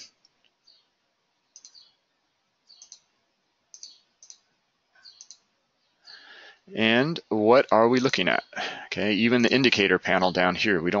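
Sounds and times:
computer mouse clicks: 0:01.5 - 0:01.9, 0:02.7 - 0:03.1, 0:03.7 - 0:05.5.

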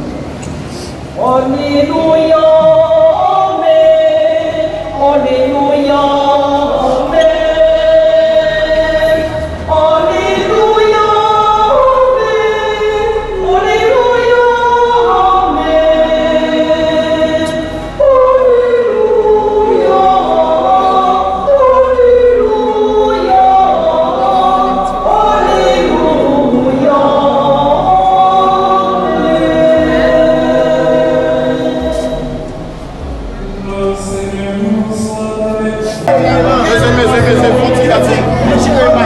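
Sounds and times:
congregation singing a hymn: 0:00.0 - 0:39.0.

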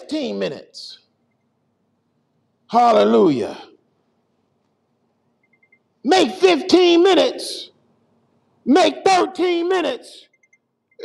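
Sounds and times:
faint high-pitched beeps: 0:05.4 - 0:05.9.

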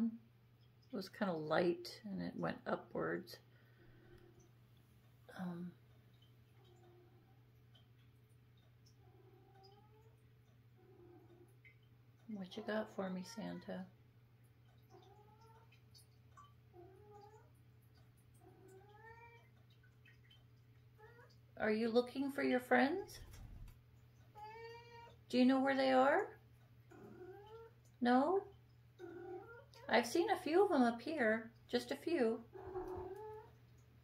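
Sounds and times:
cat meowing softly: 0:09.1 - 0:10.2, 0:12.5 - 0:13.9, 0:14.9 - 0:15.8, 0:16.8 - 0:17.5, 0:18.4 - 0:19.5, 0:21.0 - 0:21.4, 0:32.6 - 0:33.6.

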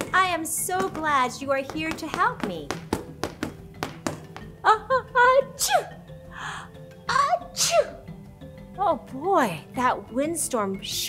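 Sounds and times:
soft background music: 0:00.0 - 0:11.0
woman sneezing: 0:05.3 - 0:06.0, 0:07.1 - 0:08.0
breathy in-breath: 0:06.2 - 0:06.8.

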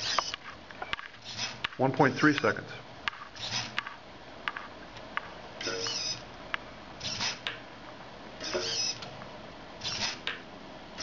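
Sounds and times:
servo whirring: 0:00.0 - 0:00.5, 0:01.2 - 0:02.4, 0:03.3 - 0:04.0, 0:05.6 - 0:06.3, 0:07.0 - 0:07.6, 0:08.4 - 0:09.1, 0:09.8 - 0:10.4.

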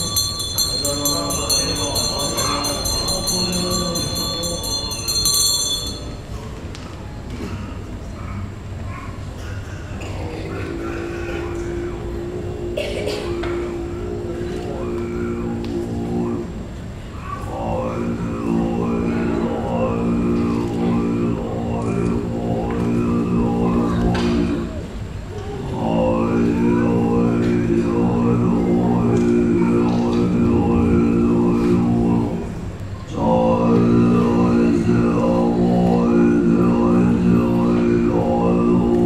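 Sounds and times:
small hand bell ringing: 0:00.0 - 0:06.3
monk chanting in deep drone: 0:00.0 - 0:06.6, 0:07.3 - 0:39.0
low murmur of hall: 0:00.0 - 0:39.0.

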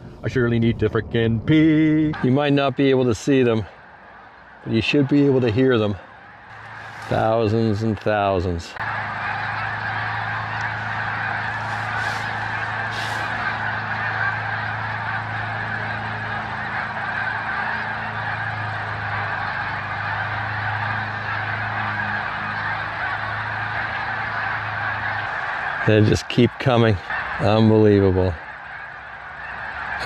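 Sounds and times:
geese honking: 0:01.5 - 0:30.0
steady low hum: 0:08.8 - 0:26.1.

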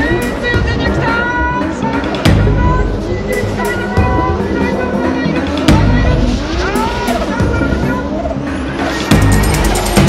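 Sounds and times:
music soundtrack: 0:00.0 - 0:10.0.

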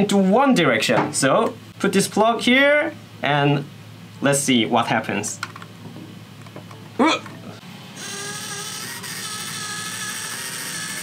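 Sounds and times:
small motor whining: 0:07.9 - 0:11.0.

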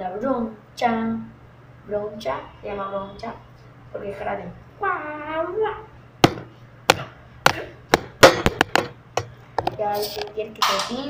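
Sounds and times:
thin stick striking something hard: 0:06.2 - 0:09.4.

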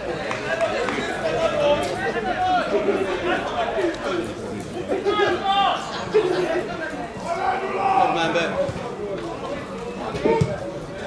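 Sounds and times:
men chatting: 0:00.0 - 0:11.0.

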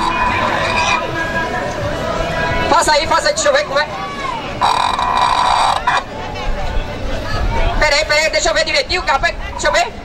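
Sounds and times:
harsh buzzy vocal noise: 0:00.0 - 0:01.3, 0:04.6 - 0:06.1.

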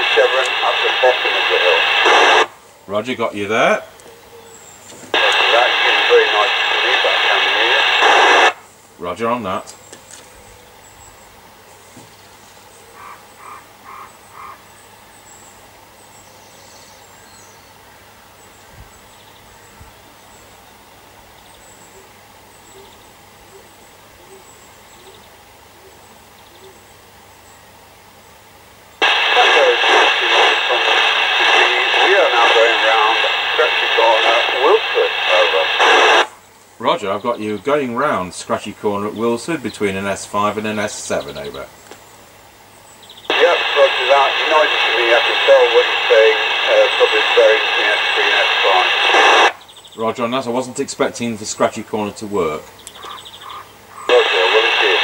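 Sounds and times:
radio static: 0:00.0 - 0:03.8, 0:05.1 - 0:09.6, 0:29.0 - 0:41.7, 0:43.3 - 0:53.2, 0:54.0 - 0:55.0
voice over radio loudspeaker: 0:00.0 - 0:03.9, 0:05.1 - 0:09.7, 0:29.0 - 0:41.7, 0:43.3 - 0:52.7, 0:54.0 - 0:55.0.

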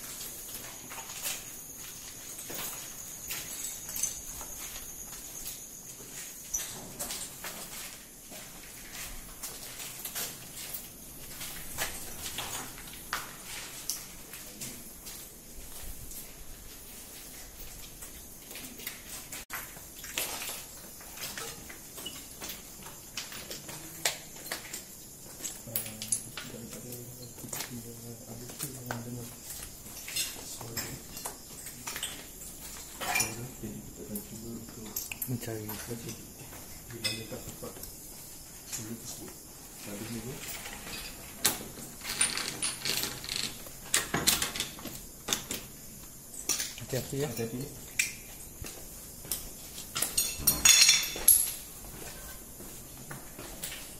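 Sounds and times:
footsteps: 0:00.0 - 0:43.8, 0:44.8 - 0:53.9.

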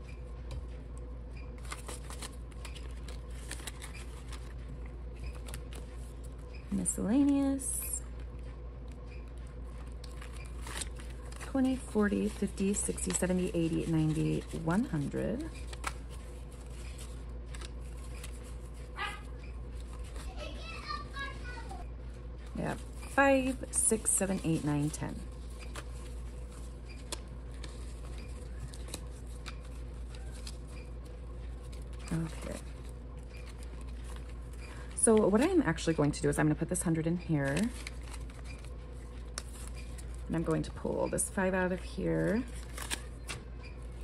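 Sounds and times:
steady low hum: 0:00.0 - 0:44.0
banknotes and plastic pockets rustling: 0:01.5 - 0:06.4, 0:09.2 - 0:21.3, 0:22.4 - 0:36.3, 0:37.4 - 0:44.0
child calling: 0:19.0 - 0:19.3, 0:20.2 - 0:21.8.

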